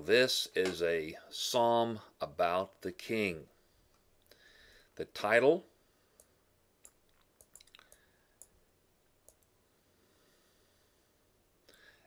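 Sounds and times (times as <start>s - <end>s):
faint sharp clicks: 6.2s - 8.6s, 9.2s - 9.5s.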